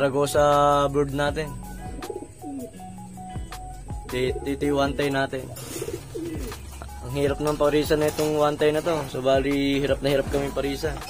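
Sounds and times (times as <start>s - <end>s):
background music with held notes: 0.0s - 11.0s
pigeons cooing: 0.0s - 11.0s.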